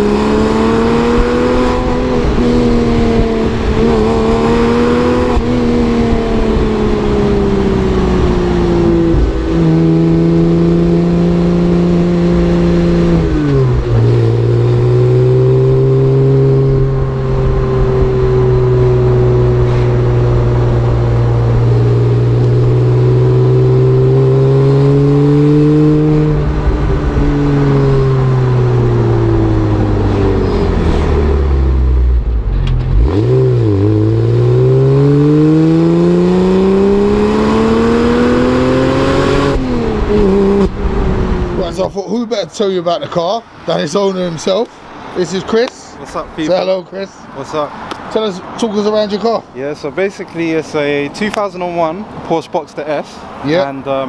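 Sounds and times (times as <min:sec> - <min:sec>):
car engine exhaust note: 0:00.0 - 0:41.9.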